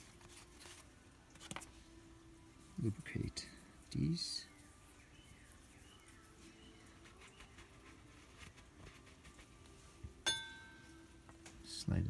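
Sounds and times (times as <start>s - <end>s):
sharp metallic clink: 10.2s - 10.9s.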